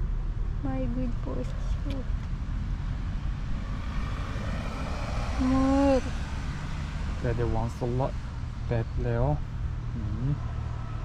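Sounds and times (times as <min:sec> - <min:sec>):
steady low rumble: 0:00.0 - 0:10.4.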